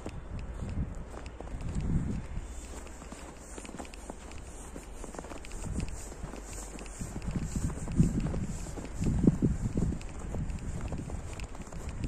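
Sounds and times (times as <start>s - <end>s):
low rumble on microphone: 0.0s - 2.8s, 4.3s - 12.0s
footsteps crunching on snow: 0.0s - 12.0s.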